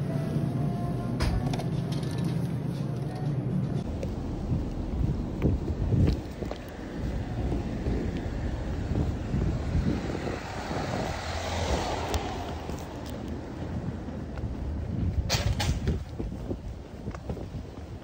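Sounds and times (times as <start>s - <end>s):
passing vehicle: 3.8s - 18.0s
wind rumbling on microphone: 3.8s - 18.0s.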